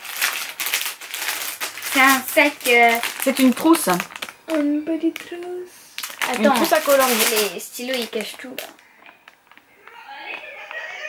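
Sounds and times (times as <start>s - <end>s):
plastic packaging crinkling: 0.0s - 10.4s.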